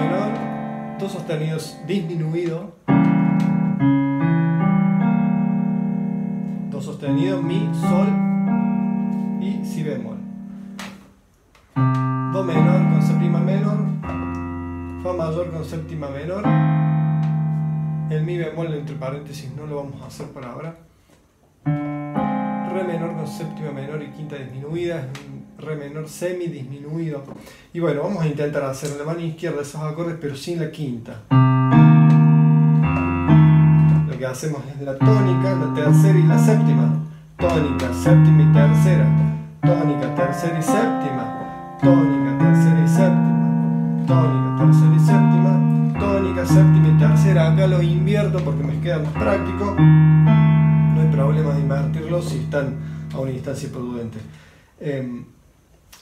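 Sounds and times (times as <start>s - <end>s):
piano chords ringing: 0.0s - 20.7s, 21.6s - 27.3s, 31.3s - 55.0s.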